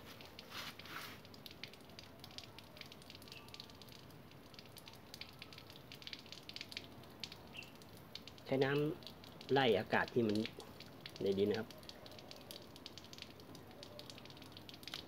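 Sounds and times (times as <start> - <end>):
wet soil crackling and fizzing: 0.0 - 15.0.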